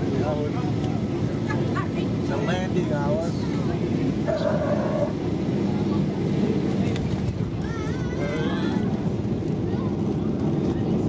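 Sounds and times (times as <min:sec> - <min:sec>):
jet engines low rumble: 0:00.0 - 0:11.0
wheels rumbling on runway: 0:00.0 - 0:11.0.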